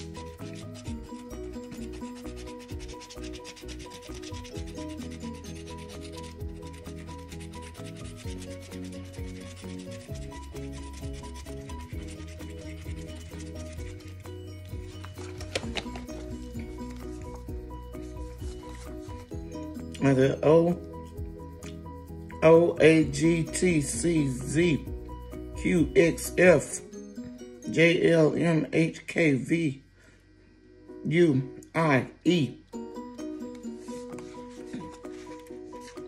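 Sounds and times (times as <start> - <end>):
coin scratching lottery ticket: 0.0 - 14.3
soft background music: 0.0 - 36.0.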